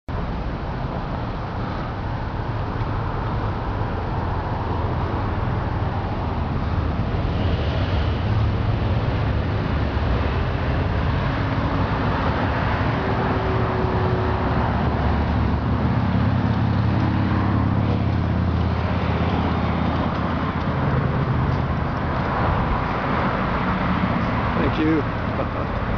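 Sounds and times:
road traffic rumble: 0.1 - 25.9.

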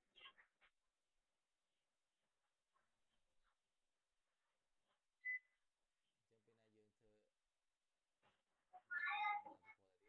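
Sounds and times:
faint voice: 8.8 - 10.0.

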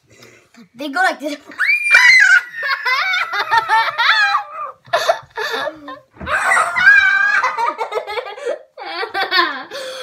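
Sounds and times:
children giggling: 2.0 - 9.8.

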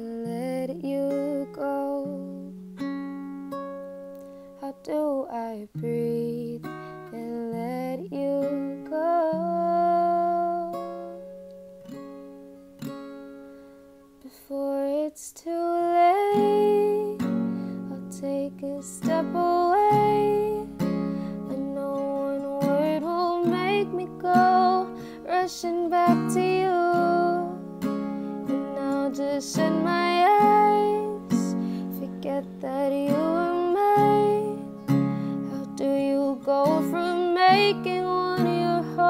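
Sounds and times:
acoustic guitar chords: 0.0 - 39.0.

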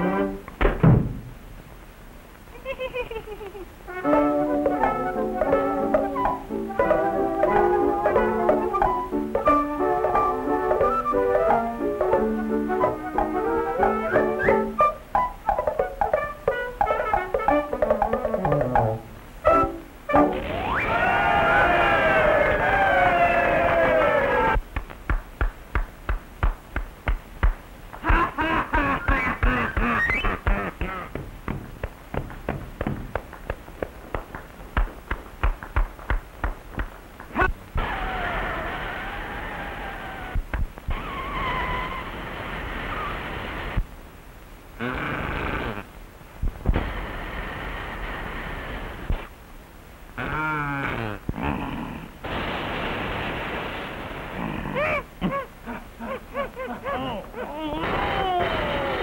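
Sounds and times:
quick percussive knocks: 24.6 - 28.1, 29.0 - 37.6.

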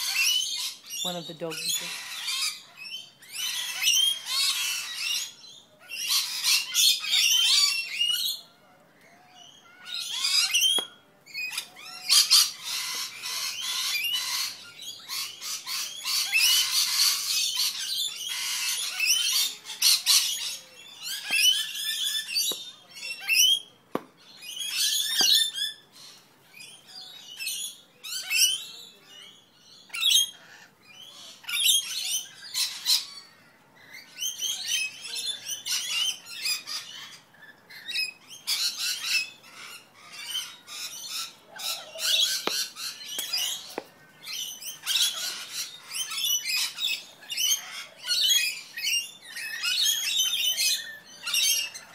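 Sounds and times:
lorikeets screeching and chattering: 0.0 - 51.9.

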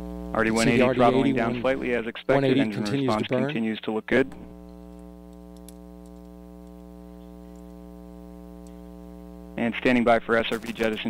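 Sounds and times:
electrical mains hum: 0.0 - 11.0
faint clicks: 4.9 - 7.8.

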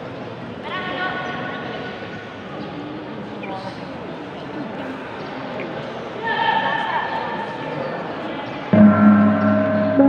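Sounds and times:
murmur of hall: 0.0 - 10.0
long pitched tone: 8.8 - 10.0.

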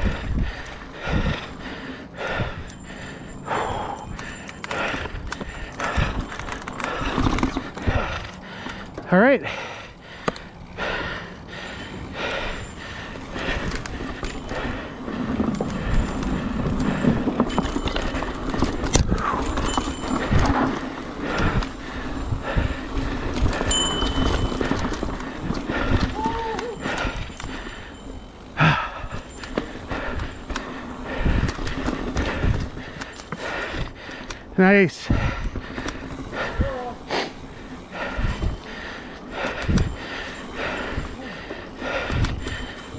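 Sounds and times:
bike knocks and rattles: 4.2 - 9.1, 13.5 - 27.6
tyres rumbling on dirt: 4.2 - 42.9.

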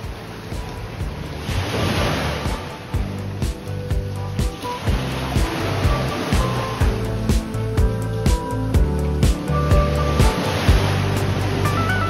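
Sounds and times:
wind on microphone: 0.0 - 8.9
background music: 0.0 - 12.0.

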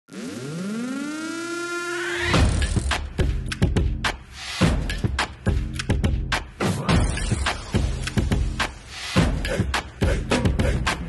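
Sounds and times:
siren-like rising tone: 0.1 - 2.5.

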